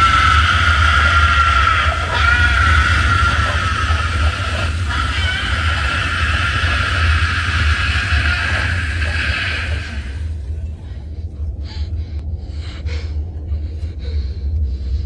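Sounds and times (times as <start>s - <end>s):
high drawn-out screaming: 0.0s - 10.3s
deep steady rumble: 0.0s - 15.0s.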